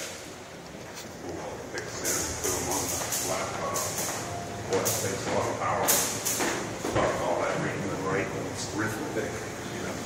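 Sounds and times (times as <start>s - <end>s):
people talking: 1.2s - 4.0s, 4.7s - 6.1s, 7.0s - 10.0s.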